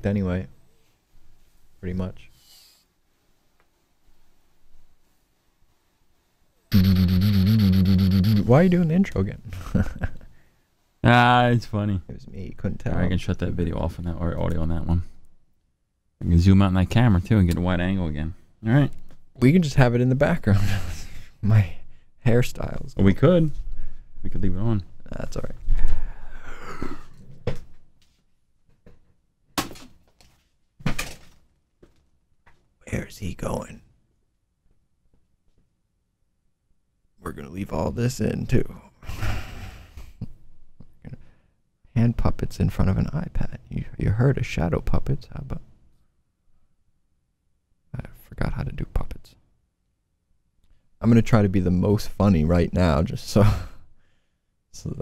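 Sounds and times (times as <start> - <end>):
loud buzzing drone: 6.7 - 8.6.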